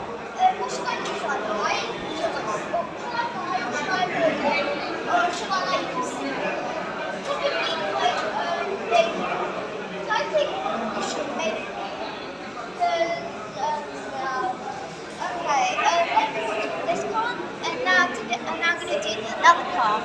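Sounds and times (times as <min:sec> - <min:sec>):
indistinct chatter of voices: 0:00.0 - 0:20.0.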